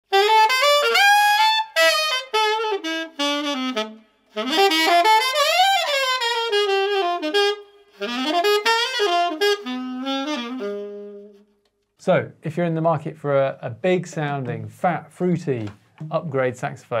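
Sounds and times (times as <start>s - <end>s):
solo alto saxophone: 0.0s - 11.7s.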